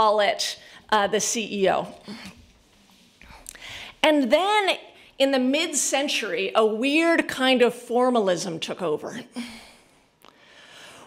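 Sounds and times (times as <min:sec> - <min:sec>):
person breathing in: 0:09.4 - 0:11.0.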